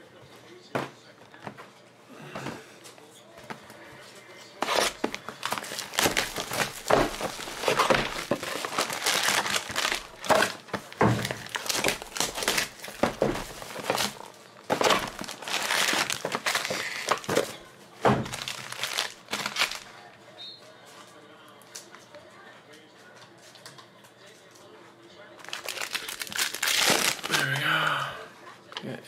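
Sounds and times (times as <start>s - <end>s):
plastic wrap crinkling: 4.6s - 20.0s, 25.4s - 27.7s.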